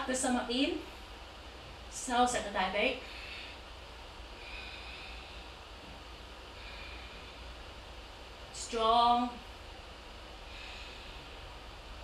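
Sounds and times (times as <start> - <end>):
steady low hum: 0.0 - 12.0
woman breathing slowly: 3.0 - 8.6, 9.4 - 12.0.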